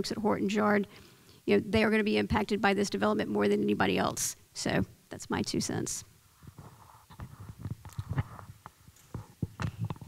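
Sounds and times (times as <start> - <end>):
microphone handling thumps: 6.4 - 10.0.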